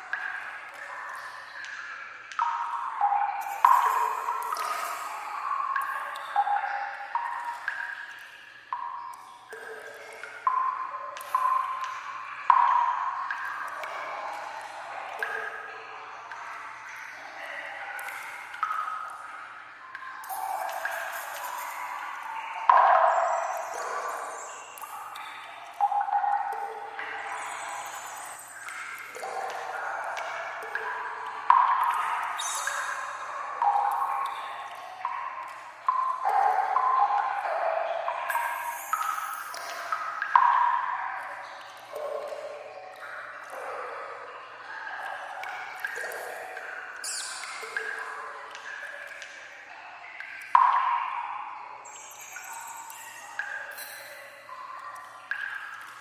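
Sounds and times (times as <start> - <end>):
hollow dripping water: 0.0 - 56.0
loud echoing water drip: 0.0 - 56.0.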